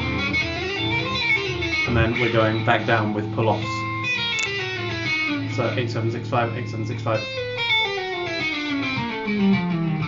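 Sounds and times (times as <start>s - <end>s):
electric guitar hammer-on notes: 0.0s - 10.0s.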